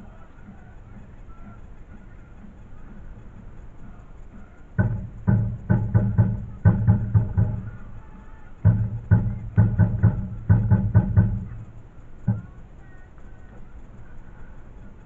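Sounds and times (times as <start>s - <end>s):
deep sharp drum strokes: 4.7s - 12.8s.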